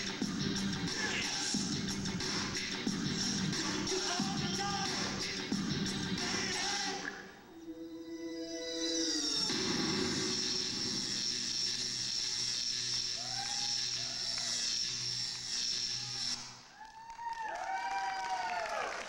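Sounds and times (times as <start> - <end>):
electronic swooping tones: 7.5 - 12.1.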